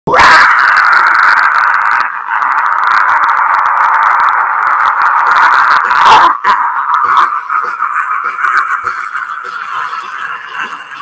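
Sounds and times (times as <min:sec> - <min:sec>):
man screaming into microphone: 0:00.1 - 0:07.3.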